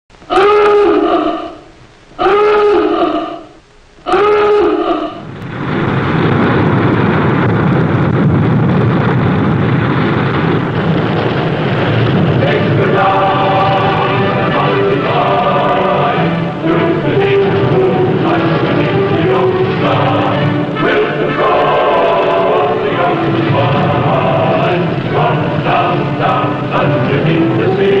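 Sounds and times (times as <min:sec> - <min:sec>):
music: 0:12.4 - 0:28.0.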